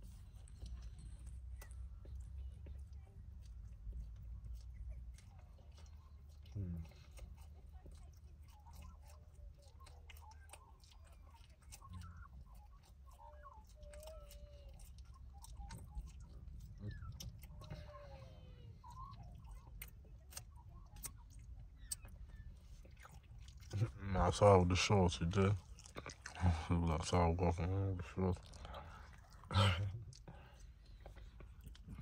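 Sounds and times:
chewing with wet mouth clicks: 0.0 - 32.0
low steady hum: 0.0 - 32.0.

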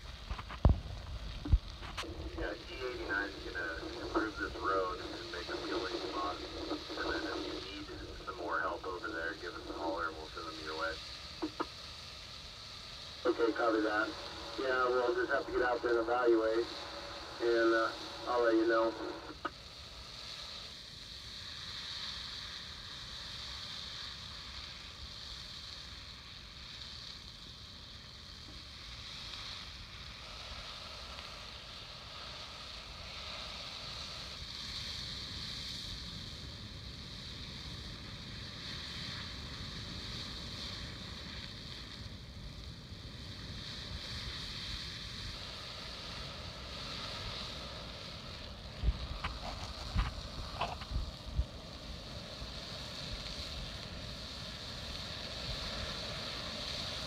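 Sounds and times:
low rumble: 0.0 - 11.6
wildfire rushing noise: 0.0 - 57.0.

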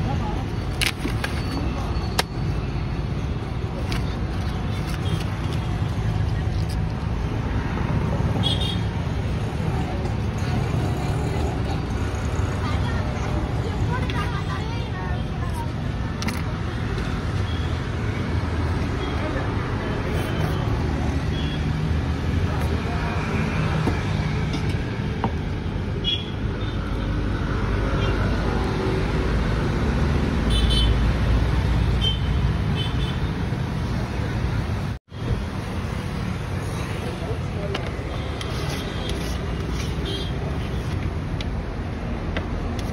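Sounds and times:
road traffic rumble: 0.0 - 42.9.

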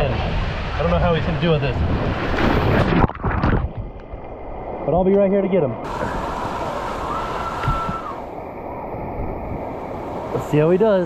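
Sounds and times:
water gushing into pool: 5.8 - 9.1.

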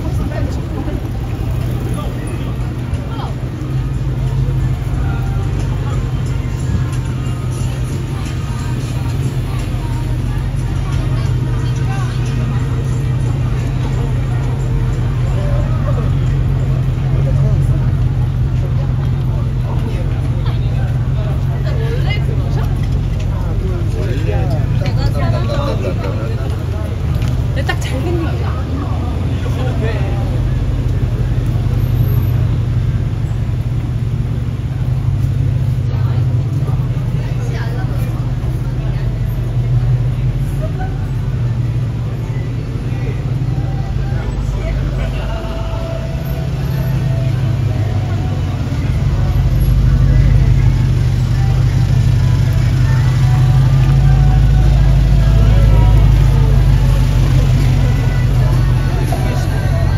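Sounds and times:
faint music: 0.0 - 33.8, 34.6 - 59.9
cars moving slowly: 0.0 - 59.9
passers-by talking: 0.0 - 59.9
steady deep hum: 41.2 - 59.9.

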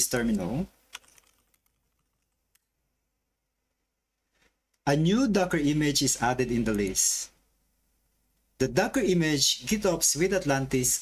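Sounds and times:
faint keyboard keystrokes: 0.9 - 2.8.

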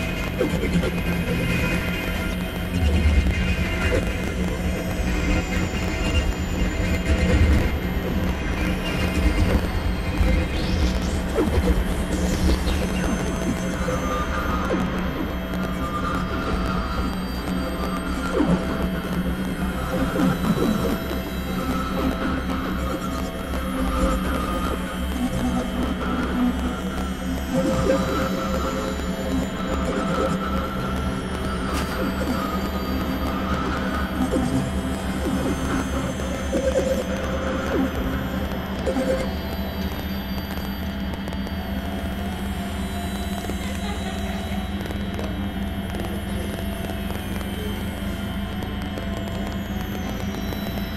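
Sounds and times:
synthesizer drone music: 0.0 - 50.9.

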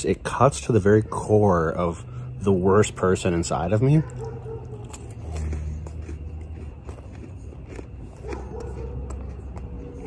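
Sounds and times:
motor vehicle passing rumble: 0.0 - 10.0.

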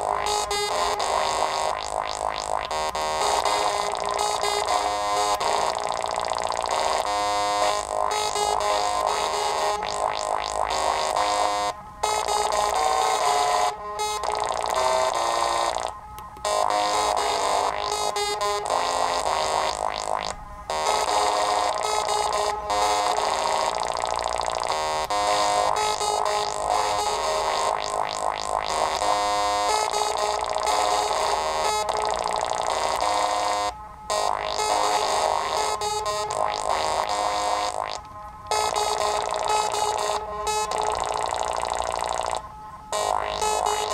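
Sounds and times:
synthesizer playing short electronic notes: 0.0 - 43.9.

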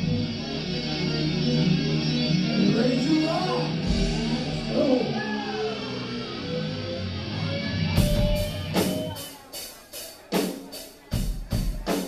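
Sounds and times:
sliding lead guitar line: 0.0 - 9.7
rock band playing: 0.0 - 12.0.

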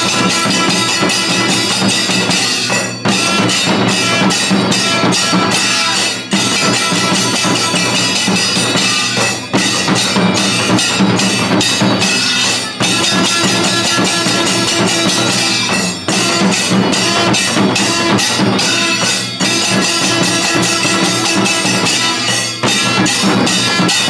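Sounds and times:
barrel drums beating fast: 0.0 - 24.0
clashing hand cymbals: 0.0 - 24.0.

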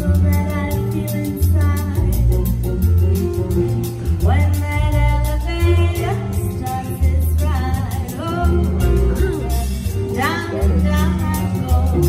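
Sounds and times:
drums on cymbals: 0.0 - 12.0
guitar: 0.0 - 12.0
piano: 0.0 - 12.0
upright bass: 0.0 - 12.0
woman singing: 0.0 - 12.0.

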